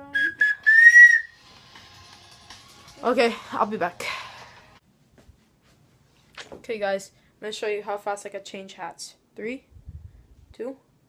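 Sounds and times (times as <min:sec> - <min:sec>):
high whistle-like tone: 0:00.0 - 0:01.4.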